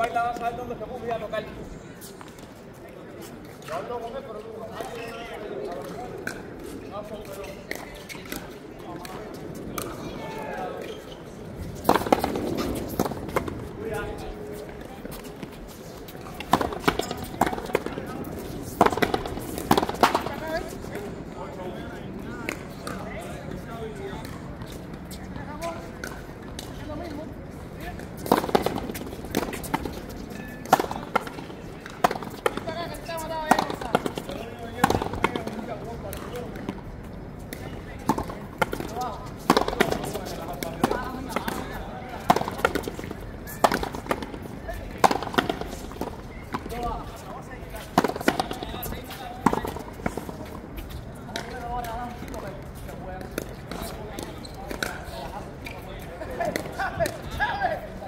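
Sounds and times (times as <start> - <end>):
ball struck by rackets: 11.8 - 13.5, 16.4 - 18.0, 18.7 - 20.4, 28.2 - 32.8, 33.4 - 36.8, 37.5 - 44.4, 45.0 - 46.9, 47.8 - 50.3.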